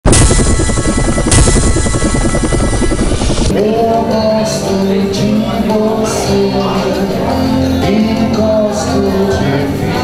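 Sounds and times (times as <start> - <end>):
bright sound burst: 0.0 - 3.6
helicopter rotor beating: 0.0 - 3.6
tv ident music: 0.0 - 4.9.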